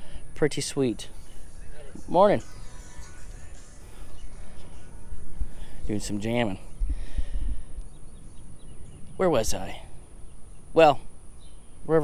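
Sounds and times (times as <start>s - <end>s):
steady high hiss: 0.0s - 12.0s
faint bird chirps: 0.8s - 12.0s.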